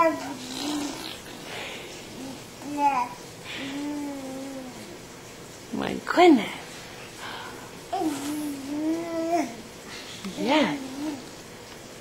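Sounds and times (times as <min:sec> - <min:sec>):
baby cooing: 0:00.0 - 0:01.4, 0:02.1 - 0:05.0, 0:07.9 - 0:09.7, 0:10.6 - 0:11.3.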